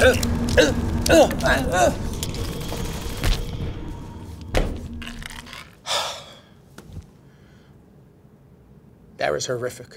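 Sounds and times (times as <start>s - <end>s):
background music: 0.0s - 6.0s.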